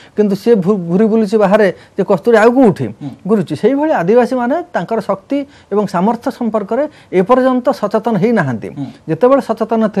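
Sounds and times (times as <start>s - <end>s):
person talking: 0.2s - 10.0s.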